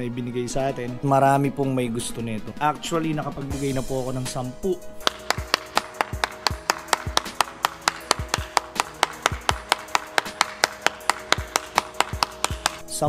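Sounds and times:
background music with low beat: 0.0s - 13.0s
person clapping: 5.0s - 12.8s.

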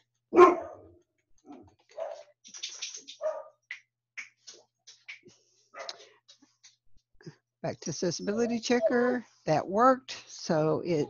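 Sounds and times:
dog barking: 0.3s - 0.9s, 1.9s - 2.3s, 3.2s - 3.6s.

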